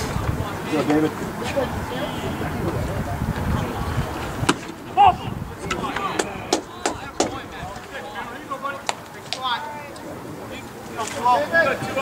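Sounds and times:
faint distant shouts: 0.2 - 10.6.

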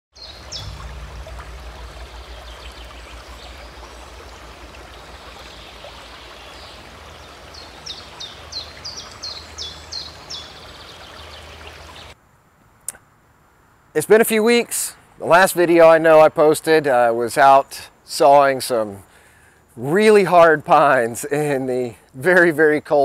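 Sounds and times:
bird calling and singing: 0.2 - 12.2
flowing water rushing: 0.2 - 12.2.

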